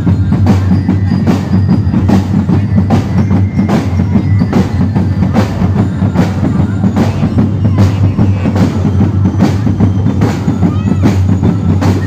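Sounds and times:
bass and snare drums beating: 0:00.0 - 0:12.0.

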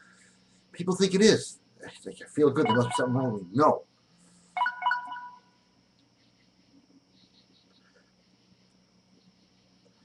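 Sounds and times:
faint low hum: 0:00.0 - 0:10.0
short electronic chime: 0:02.7 - 0:03.4, 0:04.6 - 0:05.4.

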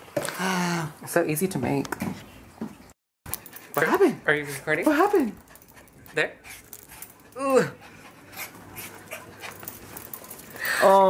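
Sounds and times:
small dog panting: 0:03.4 - 0:10.6.

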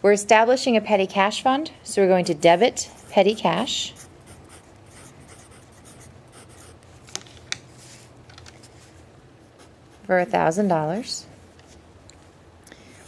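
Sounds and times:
pen scratching on paper: 0:02.4 - 0:06.8.

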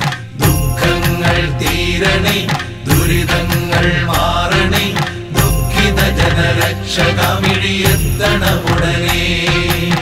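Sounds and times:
instrumental backing: 0:00.0 - 0:10.0
steady percussion beat: 0:00.0 - 0:10.0
chanted vocals: 0:00.4 - 0:10.0.

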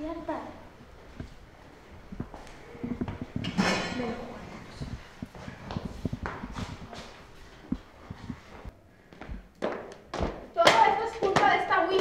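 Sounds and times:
footsteps on hard floor: 0:01.0 - 0:10.5.

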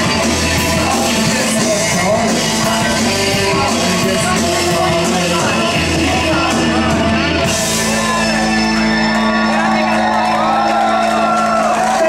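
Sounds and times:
voices shouting and whooping: 0:07.9 - 0:12.0.

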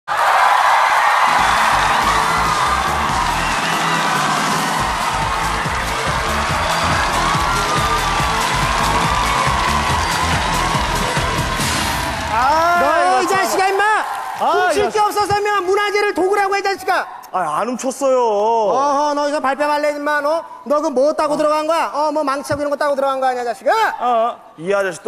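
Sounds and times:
audience cheering and shouting: 0:00.1 - 0:17.3
dance music with steady beat: 0:01.4 - 0:12.4.

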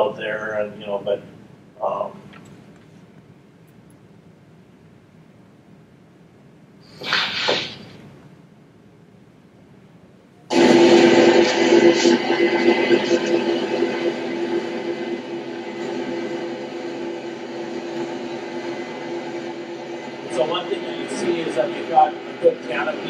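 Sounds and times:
grain cutting machine over loudspeakers: 0:10.5 - 0:23.0.

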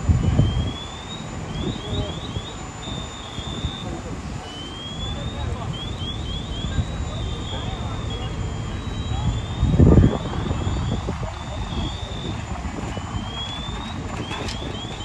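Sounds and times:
fire engine rumbling: 0:00.0 - 0:15.0
loud low burst: 0:00.0 - 0:15.0.

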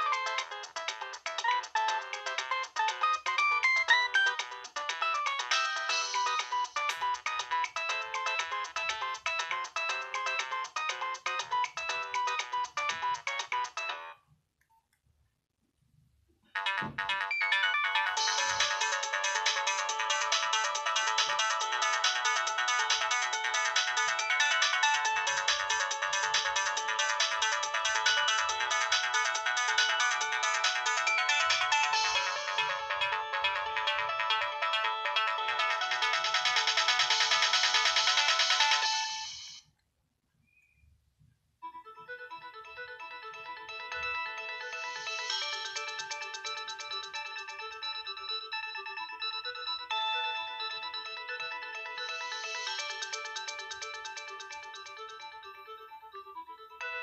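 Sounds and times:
polyphonic ringtone melodies: 0:00.0 - 0:14.2, 0:16.6 - 0:39.6, 0:41.7 - 0:57.0.

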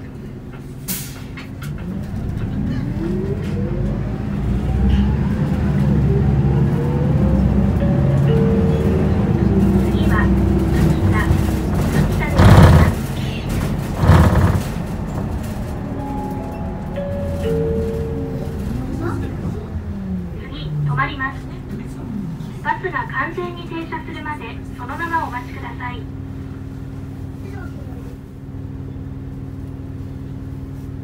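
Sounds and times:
bus diesel engine accelerating: 0:00.0 - 0:31.0.

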